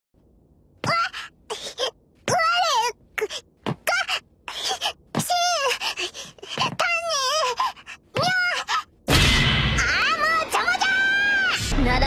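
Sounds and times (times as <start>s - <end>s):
girl whining and grumbling: 0.8s - 9.0s.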